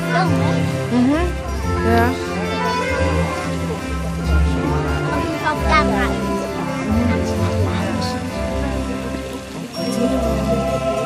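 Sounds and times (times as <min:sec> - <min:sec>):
music over loudspeakers: 0:00.0 - 0:11.0
water jets splashing: 0:00.0 - 0:11.0.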